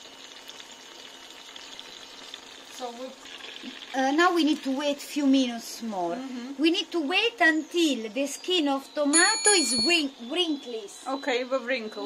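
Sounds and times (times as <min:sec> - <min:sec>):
food sizzling in oil: 0:00.0 - 0:10.8
faint high tone: 0:09.1 - 0:12.0.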